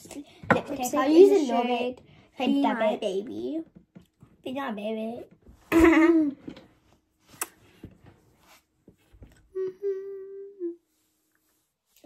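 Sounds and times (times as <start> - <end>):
girl humming: 9.5 - 10.9.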